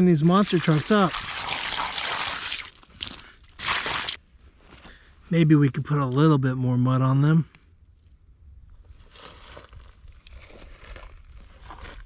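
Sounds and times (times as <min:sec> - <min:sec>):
water splashing into muddy puddle: 0:00.2 - 0:04.2.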